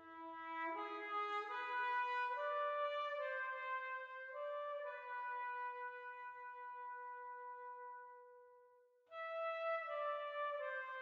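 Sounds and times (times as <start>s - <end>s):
sustained brass chords: 0.0s - 8.4s, 9.1s - 11.0s.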